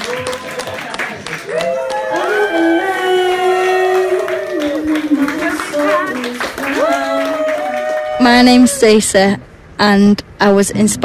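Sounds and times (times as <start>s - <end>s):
hand-clapping: 0.0s - 2.3s, 3.6s - 8.0s.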